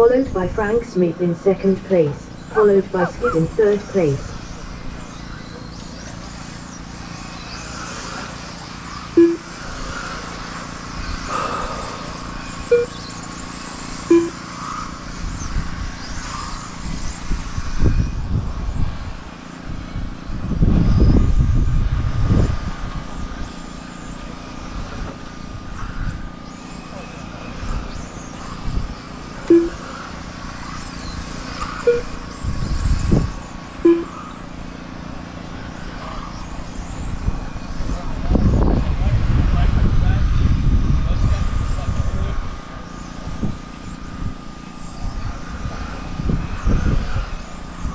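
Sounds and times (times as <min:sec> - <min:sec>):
electric rc car motors whining: 0:01.6 - 0:47.9
short beeps: 0:09.2 - 0:09.6, 0:12.7 - 0:13.1, 0:14.0 - 0:14.6, 0:29.5 - 0:29.9, 0:31.8 - 0:32.2, 0:33.8 - 0:34.3.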